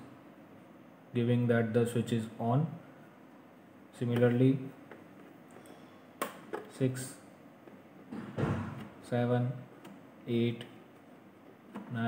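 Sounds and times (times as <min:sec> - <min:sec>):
dull thump: 0:08.1 - 0:08.9.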